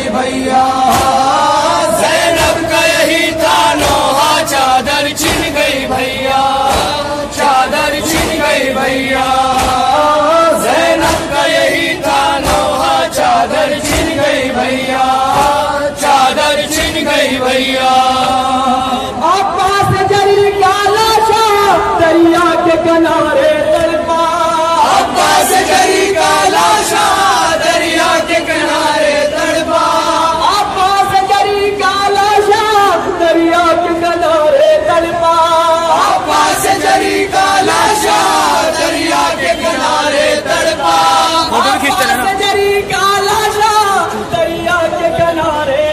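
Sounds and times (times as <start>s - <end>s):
mourning lament chanted: 0.0s - 45.9s.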